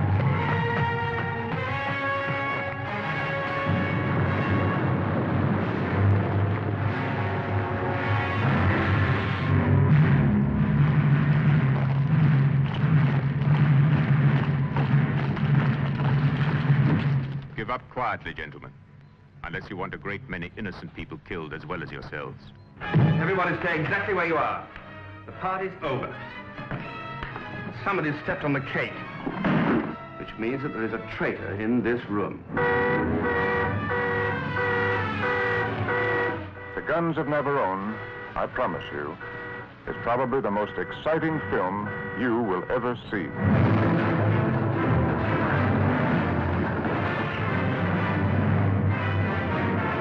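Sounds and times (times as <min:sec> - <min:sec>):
orchestral brass chords: 0:00.0 - 0:15.0, 0:22.8 - 0:50.0
loud low rumble: 0:03.7 - 0:17.5, 0:43.4 - 0:49.0
rough noise: 0:29.2 - 0:30.3.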